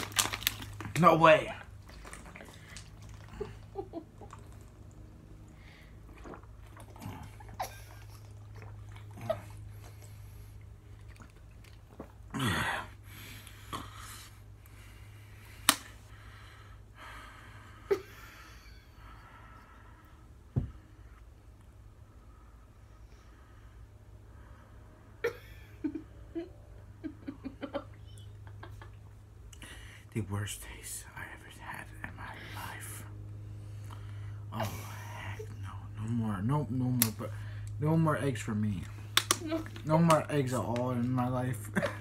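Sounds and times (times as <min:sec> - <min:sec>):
plastic bottle rustling: 0:00.0 - 0:01.0
low room hum: 0:00.0 - 0:42.0
gulps of drinking: 0:00.8 - 0:14.1.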